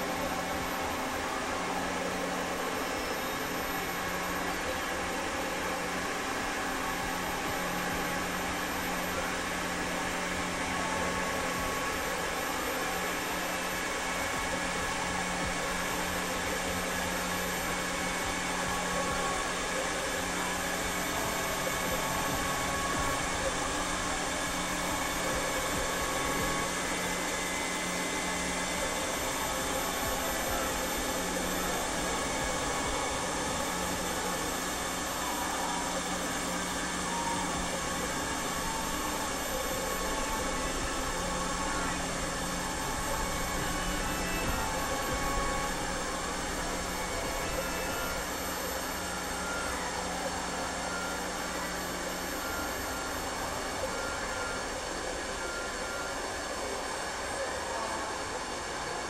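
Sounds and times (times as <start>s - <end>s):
constant low humming tone: 0.0s - 56.0s
dense hiss-like noise wash: 0.0s - 59.0s
faint held higher tones: 0.0s - 59.0s.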